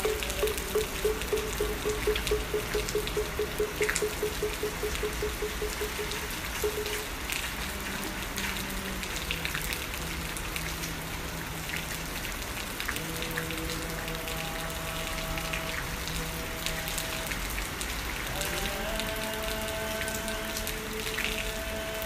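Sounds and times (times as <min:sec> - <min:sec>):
held musical notes: 0:00.0 - 0:07.1
steady rainfall: 0:00.0 - 0:22.0.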